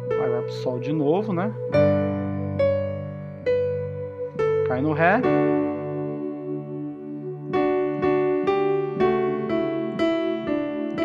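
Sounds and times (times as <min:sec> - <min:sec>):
electronic keyboard piano chords: 0:00.0 - 0:11.0.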